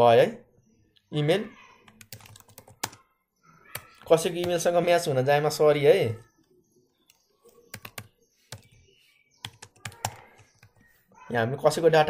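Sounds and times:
computer keyboard typing: 1.8s - 4.8s, 7.0s - 8.8s, 9.4s - 10.9s.

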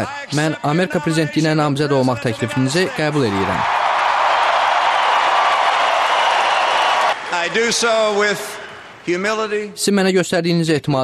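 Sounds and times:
crowd applauding and cheering: 2.5s - 9.2s.

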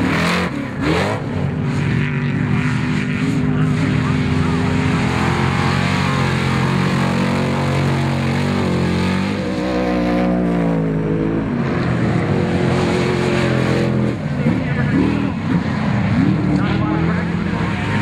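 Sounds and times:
truck engines racing: 0.0s - 18.0s.

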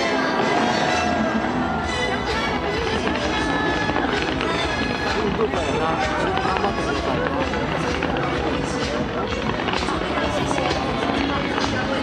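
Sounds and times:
music playing: 0.0s - 12.0s
voices: 0.0s - 12.0s
fireworks crackling: 1.8s - 12.0s.

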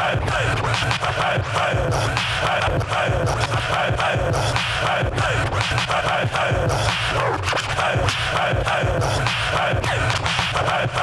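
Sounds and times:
hip-hop beat: 0.0s - 11.0s
turntable scratching: 0.0s - 11.0s.

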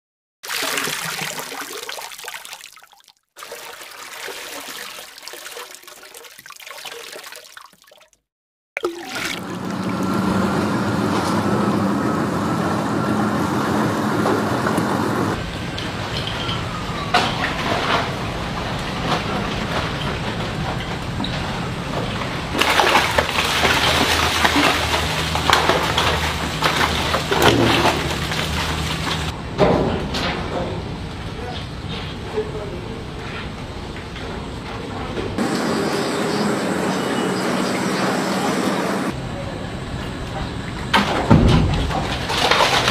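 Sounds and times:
water rushing and pouring: 0.4s - 8.2s, 8.8s - 11.0s, 22.5s - 29.4s
machinery humming: 9.2s - 29.6s, 32.6s - 42.2s.

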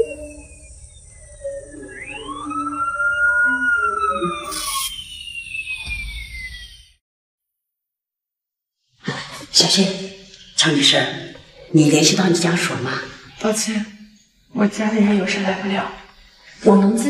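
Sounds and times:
emergency vehicle sirens wailing: 0.0s - 6.8s.

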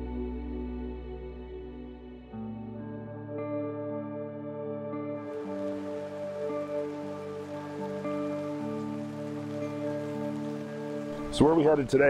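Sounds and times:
ambient music with held chords: 0.0s - 12.0s
rain falling: 5.2s - 12.0s.

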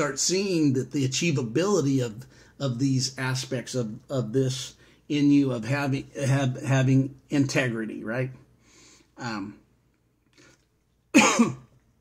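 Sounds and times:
man coughing: 11.1s - 11.7s.

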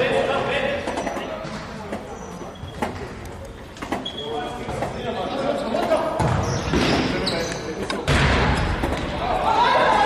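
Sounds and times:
loud impact: 8.0s - 9.3s.

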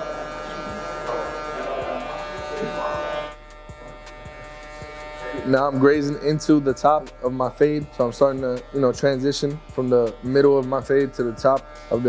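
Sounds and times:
background music with steady beat: 0.0s - 12.0s
hair clipper buzzing: 0.0s - 12.0s.

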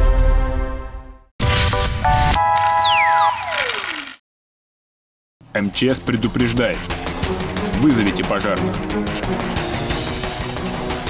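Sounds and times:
held synth chord: 2.0s - 3.9s.

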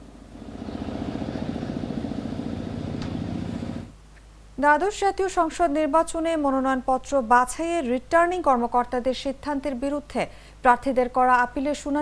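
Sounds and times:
small motorcycle engine running: 0.3s - 3.9s.

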